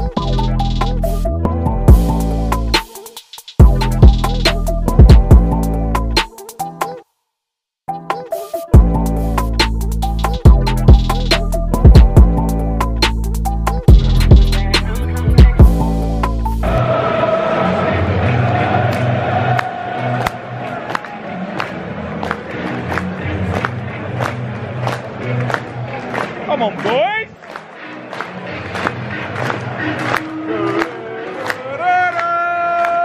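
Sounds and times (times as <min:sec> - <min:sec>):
stadium music with steady beat: 0:00.0 - 0:07.0, 0:07.9 - 0:33.0
large crowd: 0:16.6 - 0:33.0.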